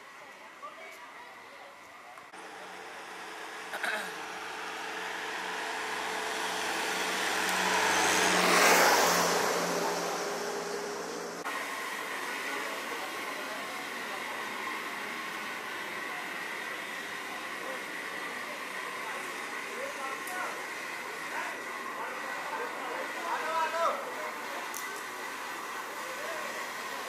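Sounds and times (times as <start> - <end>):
outdoor background hum: 0.0 - 27.0
vehicle passing close by: 4.3 - 11.5.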